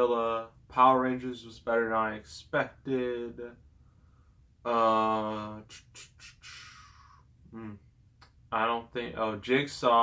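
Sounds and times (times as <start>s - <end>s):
soft breath: 3.7s - 4.6s, 5.7s - 7.3s
man's wordless uh: 4.7s - 7.9s.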